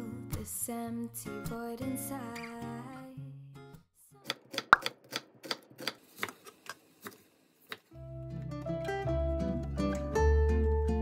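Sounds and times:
knife chopping on wooden board: 4.3s - 6.4s.

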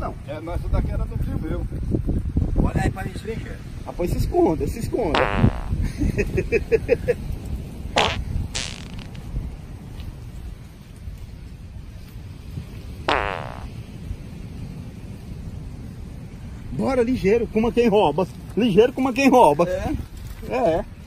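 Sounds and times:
farts: 5.2s - 5.8s, 8.0s - 9.2s, 13.1s - 13.7s.

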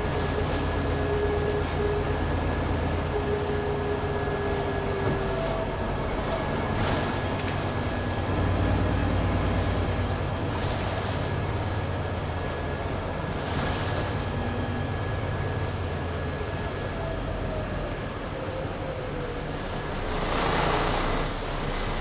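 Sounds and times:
bus engine and road rumble: 0.0s - 22.0s.

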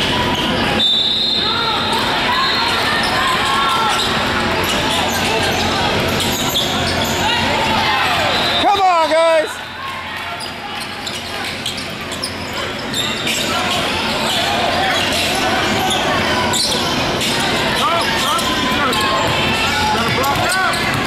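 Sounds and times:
sneakers squeaking: 0.0s - 8.7s, 9.4s - 21.0s
spectators talking and calling: 0.0s - 21.0s.

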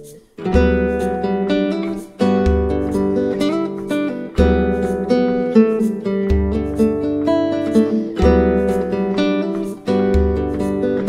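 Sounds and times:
nylon-string guitar bossa nova: 0.0s - 11.0s.

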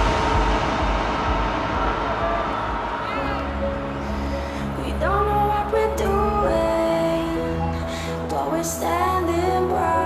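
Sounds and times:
electronic dance music synth chords: 0.0s - 7.8s.

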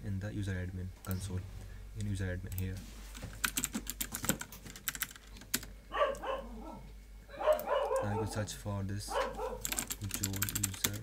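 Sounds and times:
computer keyboard typing: 2.0s - 5.7s, 9.6s - 11.0s.

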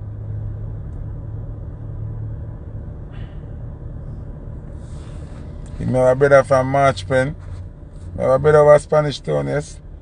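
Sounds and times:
car cabin hum: 0.0s - 10.0s.

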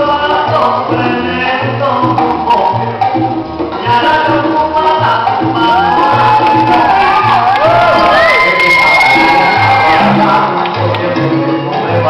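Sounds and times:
salsa music: 0.0s - 12.0s
audience cheering and whooping: 5.6s - 10.6s.

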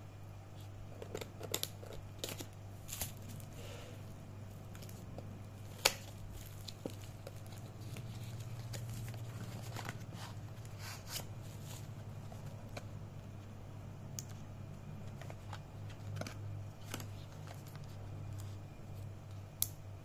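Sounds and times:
steady low hum: 0.0s - 20.0s
cardboard packaging rustling: 4.5s - 12.9s, 15.0s - 19.1s.

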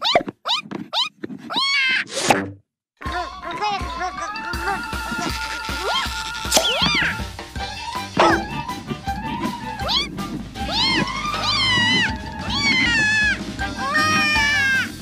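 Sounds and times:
background music: 3.1s - 15.0s
cartoon kitten mewing: 9.8s - 14.9s.

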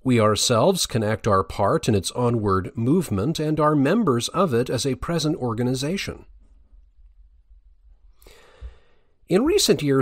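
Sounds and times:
man breathing in: 8.1s - 9.2s.

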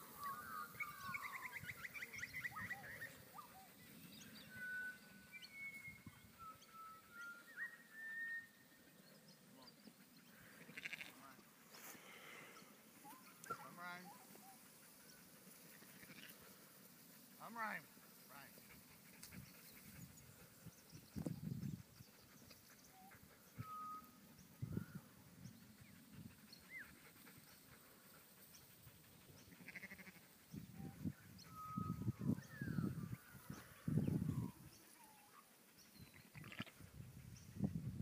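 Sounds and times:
sheep bleating: 10.7s - 11.2s, 29.7s - 30.2s.

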